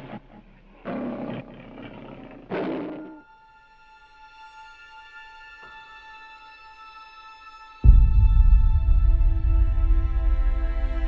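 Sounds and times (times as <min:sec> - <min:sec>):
lion roaring: 0:00.0 - 0:03.3.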